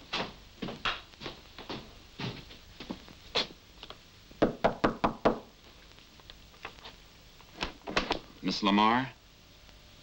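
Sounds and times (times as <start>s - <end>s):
knocking on wooden door: 4.4s - 5.5s.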